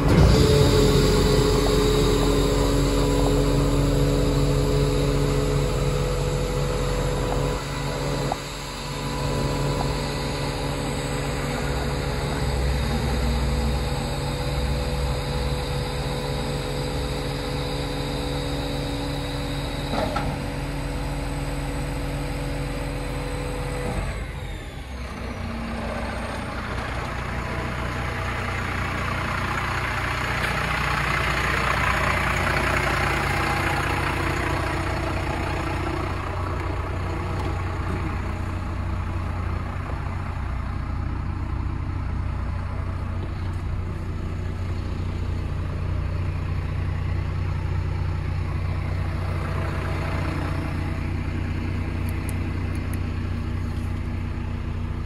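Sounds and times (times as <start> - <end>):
garbage truck diesel engine idling: 0.0 - 55.0.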